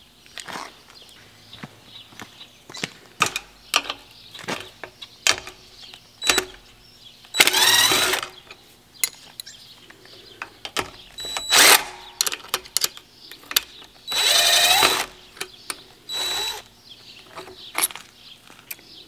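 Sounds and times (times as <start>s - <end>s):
cordless drill spinning: 7.3s - 8.4s, 11.2s - 12.0s, 14.0s - 15.2s, 16.1s - 16.7s.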